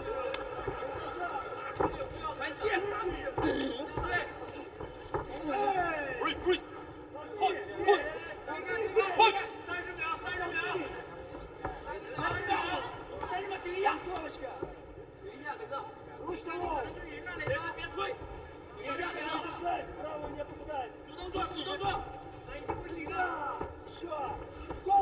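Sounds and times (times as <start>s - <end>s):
arena crowd noise: 0.0s - 25.0s.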